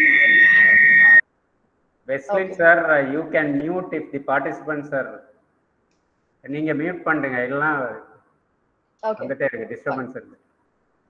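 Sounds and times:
high-pitched whine: 0:00.0 - 0:01.2.

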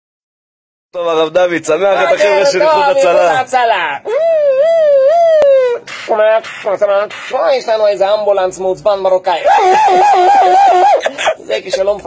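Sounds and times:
man imitating a siren: 0:04.0 - 0:05.9, 0:09.4 - 0:11.2.

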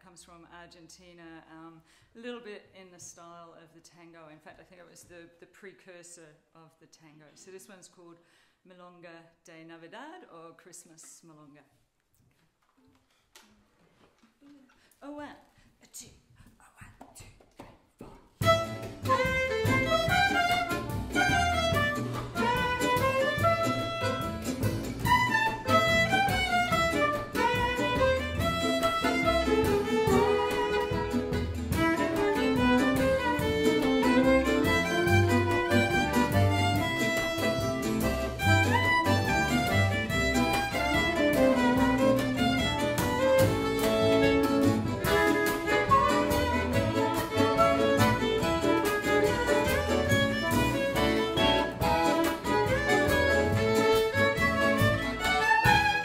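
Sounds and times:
accordion: 0:18.4 - 0:56.0
double bass: 0:18.4 - 0:56.0
drums: 0:18.4 - 0:56.0
guitar: 0:18.4 - 0:56.0
violin melody: 0:18.4 - 0:56.0
soprano saxophone: 0:26.8 - 0:39.2, 0:40.2 - 0:53.0.

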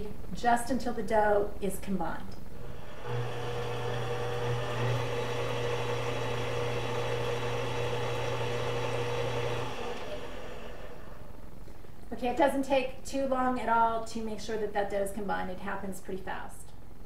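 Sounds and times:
stand mixer motor running: 0:02.6 - 0:11.3.

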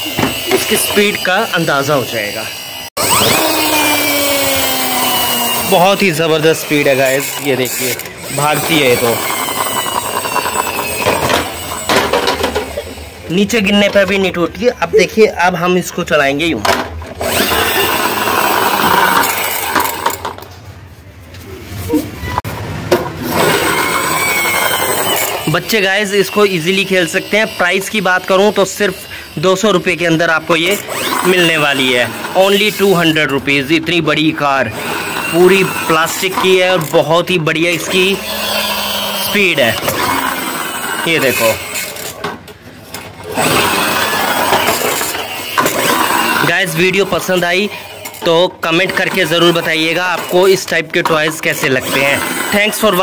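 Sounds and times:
toy car gear motor whirring: 0:00.0 - 0:13.2, 0:17.2 - 0:20.4, 0:23.3 - 0:33.4, 0:34.4 - 0:42.3, 0:42.9 - 0:53.0
toy car wheels on hard floor: 0:07.0 - 0:12.6, 0:23.4 - 0:25.5.

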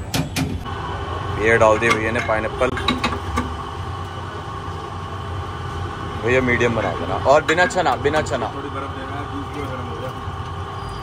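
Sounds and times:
juicer motor humming: 0:00.6 - 0:11.0.

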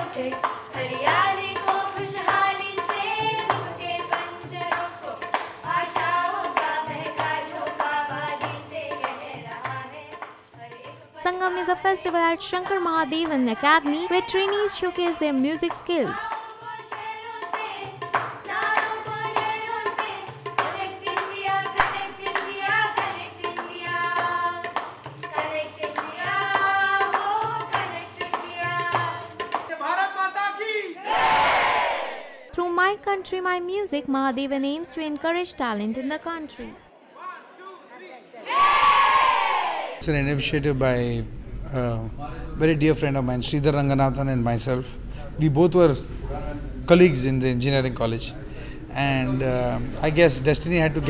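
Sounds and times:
hand claps: 0:00.0 - 0:11.1, 0:12.0 - 0:29.7
women singing together: 0:00.0 - 0:29.6
children cheering: 0:31.0 - 0:32.4, 0:38.5 - 0:40.0.

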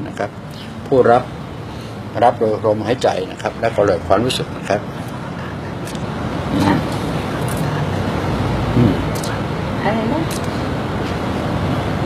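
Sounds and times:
steady rushing noise: 0:00.0 - 0:12.0
faint voice: 0:04.7 - 0:09.4.

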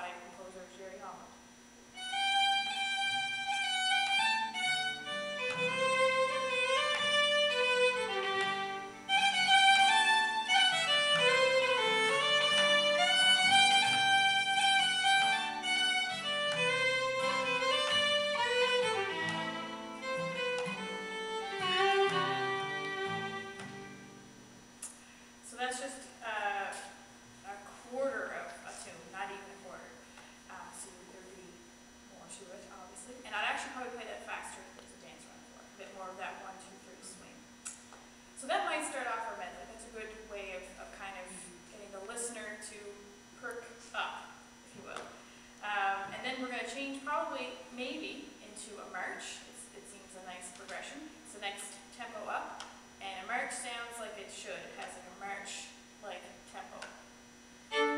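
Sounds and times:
quiet acoustic guitar: 0:01.9 - 0:25.0
solo fiddle tune: 0:02.0 - 0:24.3, 0:57.7 - 0:57.9.

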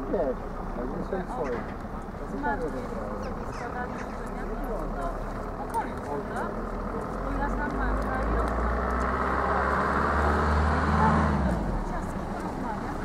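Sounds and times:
voices chattering: 0:00.0 - 0:13.0
vehicle passing by: 0:02.2 - 0:13.0.

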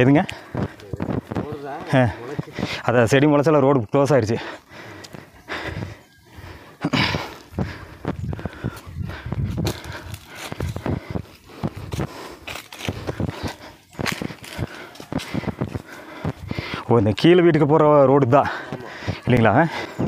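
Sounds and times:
footsteps on dirt path: 0:00.0 - 0:20.0
dry grass rustling: 0:06.9 - 0:20.0.

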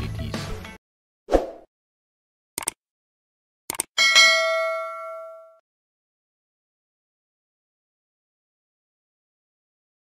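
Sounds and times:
notification bell ding: 0:04.0 - 0:05.6.

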